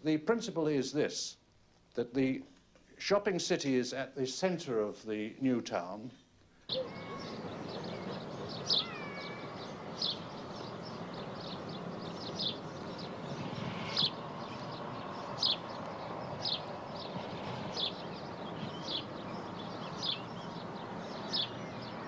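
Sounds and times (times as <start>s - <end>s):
bird chirping: 6.7s - 22.0s
outdoor background rumble: 6.7s - 22.0s.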